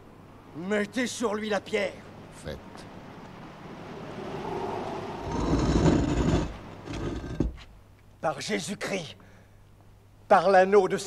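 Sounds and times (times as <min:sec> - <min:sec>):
stone slab grinding and scraping: 0:05.2 - 0:07.7.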